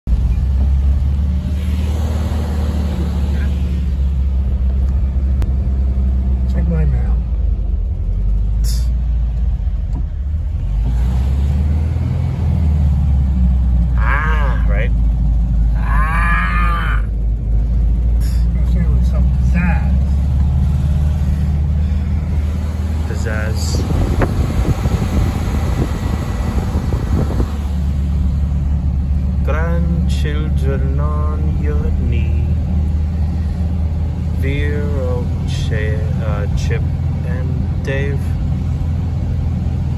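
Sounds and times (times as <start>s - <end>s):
bus engine rumble: 0.0s - 39.9s
road noise: 0.0s - 39.9s.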